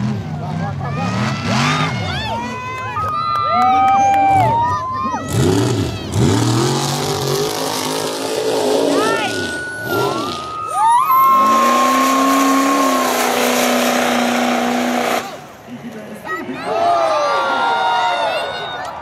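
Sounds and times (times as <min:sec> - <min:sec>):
diesel truck engine revving: 0:00.0 - 0:02.6, 0:04.3 - 0:15.7.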